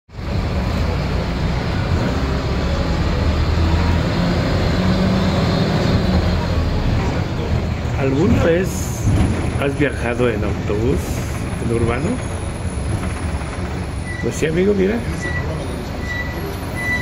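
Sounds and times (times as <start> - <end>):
bus engine drone: 0.1 - 17.0
road noise: 0.1 - 17.0.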